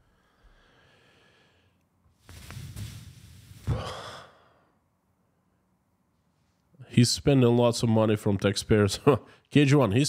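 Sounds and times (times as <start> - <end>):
man sighing: 3.6 - 4.6.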